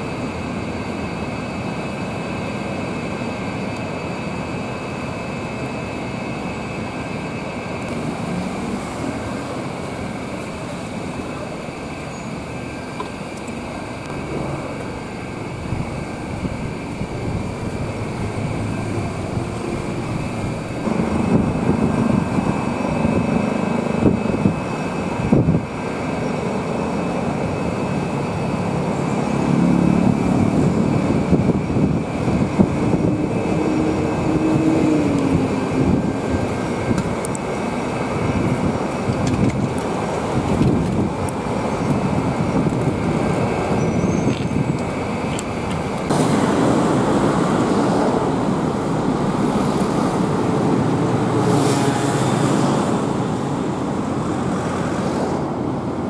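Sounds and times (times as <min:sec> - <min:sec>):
road traffic passing: 0:06.5 - 0:56.0
engine rising and falling: 0:14.0 - 0:24.1.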